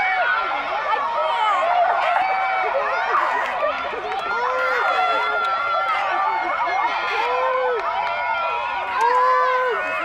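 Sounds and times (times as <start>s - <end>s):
girls calling and shouting: 0.0s - 10.0s.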